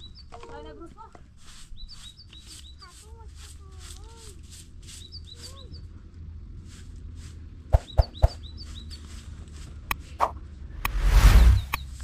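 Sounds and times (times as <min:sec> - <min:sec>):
small bird chirping: 0:00.0 - 0:06.0, 0:07.7 - 0:09.4.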